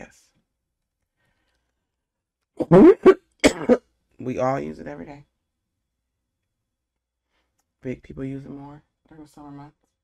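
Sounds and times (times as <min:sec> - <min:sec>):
person coughing and laughing: 0:02.6 - 0:03.8.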